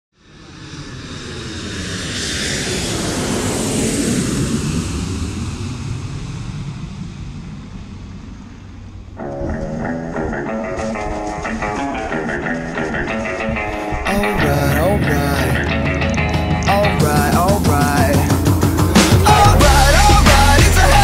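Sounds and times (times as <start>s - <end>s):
loud even rushing noise: 0.2s - 21.0s
electric guitar riff: 9.2s - 21.0s.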